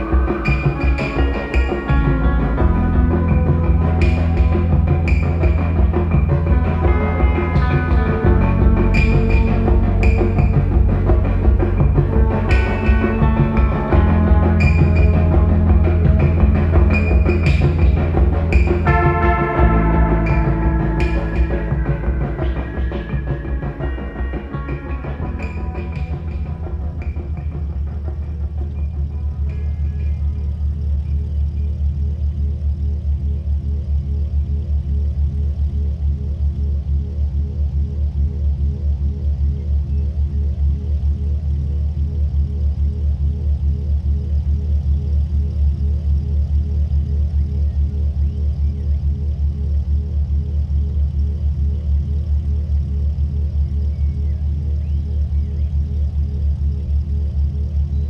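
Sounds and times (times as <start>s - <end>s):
car engine idling: 0.0s - 58.0s.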